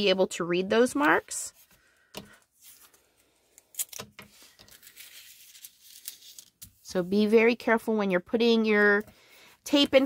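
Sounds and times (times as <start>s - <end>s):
foil crinkling and rustling: 3.7s - 6.6s.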